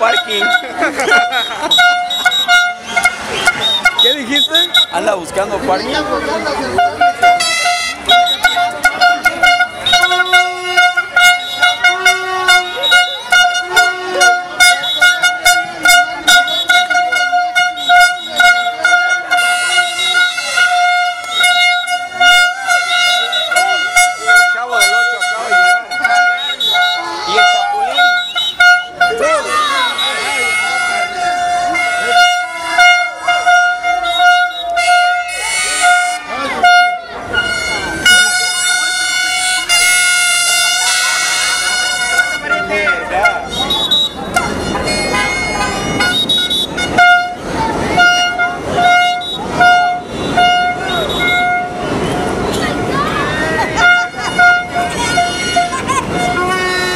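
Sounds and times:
plastic horns tooting: 0.0 - 5.6, 6.6 - 56.9
crowd shouting: 0.0 - 56.9.

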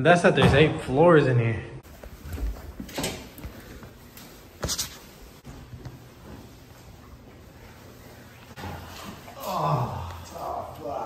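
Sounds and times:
soft footsteps: 1.8 - 9.4.

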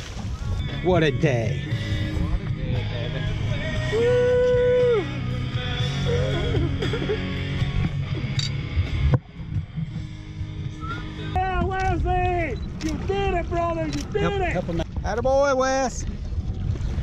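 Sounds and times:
background music: 0.0 - 14.8
low wind: 0.0 - 17.0
water noise: 0.0 - 17.0.

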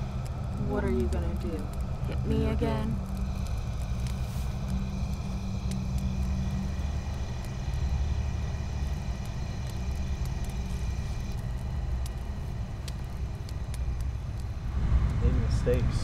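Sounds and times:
faint high steady tones: 0.0 - 15.7
low humming rumble: 0.0 - 16.0.

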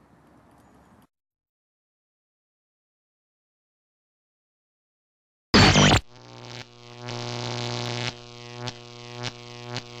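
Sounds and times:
sharp electronic hits: 5.6 - 6.0.

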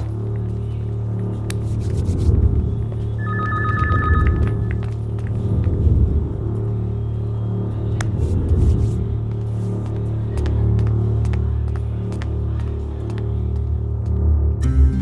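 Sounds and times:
electronic telephone ring: 3.2 - 4.8.

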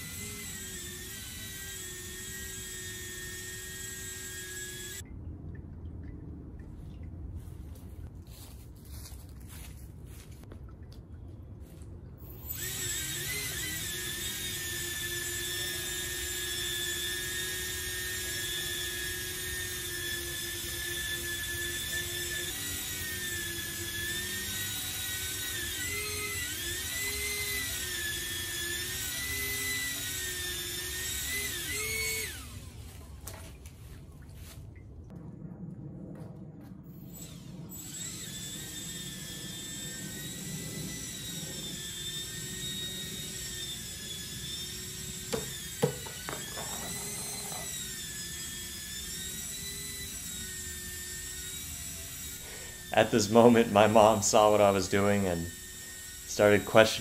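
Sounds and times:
electric fans whining: 0.0 - 5.0.

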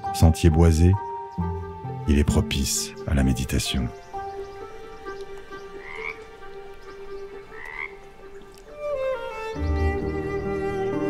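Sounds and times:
soft background music: 0.0 - 11.0
frog croaking: 3.0 - 9.6.

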